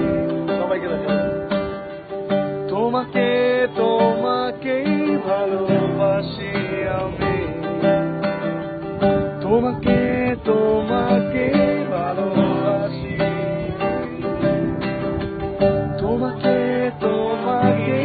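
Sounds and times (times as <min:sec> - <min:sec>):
acoustic guitar strumming: 0:00.0 - 0:18.0
voices singing: 0:02.7 - 0:08.6, 0:09.3 - 0:18.0.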